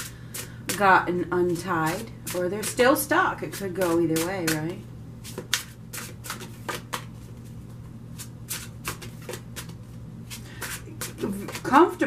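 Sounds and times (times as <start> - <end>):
cards being shuffled: 3.5 - 11.7.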